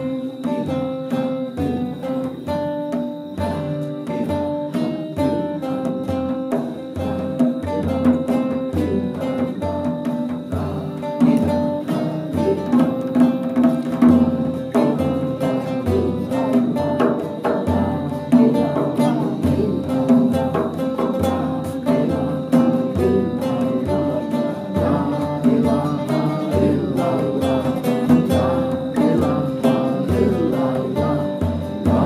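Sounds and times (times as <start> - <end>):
acoustic guitars strumming: 0.0 - 32.0
frame drum slow beat: 0.0 - 32.0.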